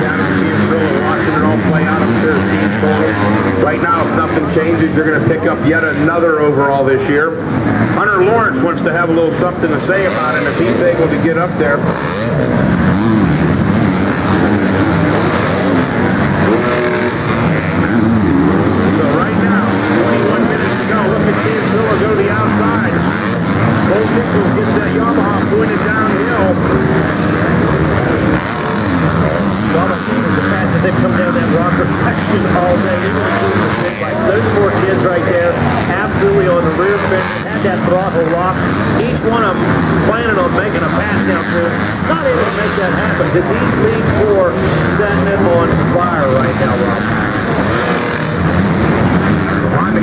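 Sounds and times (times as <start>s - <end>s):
dirt bike engines revving: 0.0s - 50.0s.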